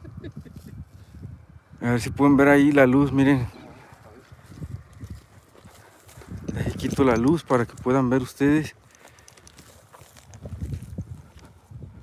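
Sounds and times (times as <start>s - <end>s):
footsteps on rocky dirt: 3.7s - 12.0s.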